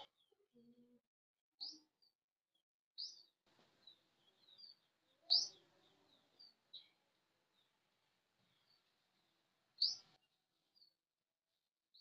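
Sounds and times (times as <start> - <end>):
small birds chirping: 0.0 - 1.0, 1.6 - 11.0.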